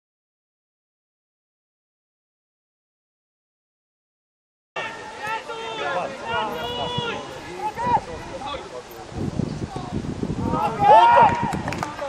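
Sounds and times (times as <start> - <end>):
loud shout: 4.8 - 8.2, 10.4 - 12.0
players shouting: 4.8 - 8.8, 9.7 - 12.0
wind rumble on microphone: 6.3 - 12.0.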